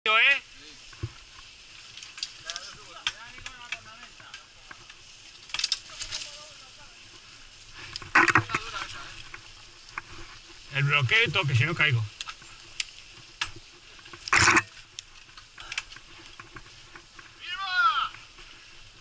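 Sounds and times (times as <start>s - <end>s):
tyres hissing on dirt and gravel: 0.1s - 19.0s
bike rattling over bumps: 0.9s - 17.4s.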